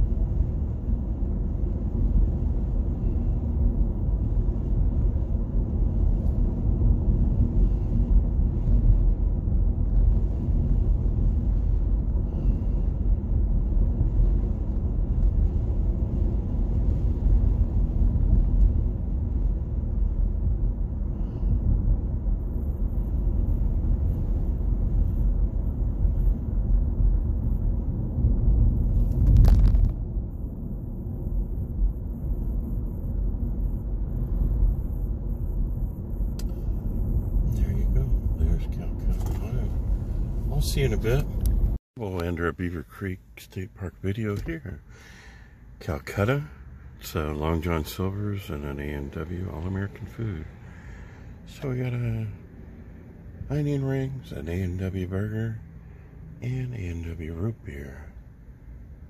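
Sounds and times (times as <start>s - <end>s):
road and tyre noise in car: 0.0s - 59.0s.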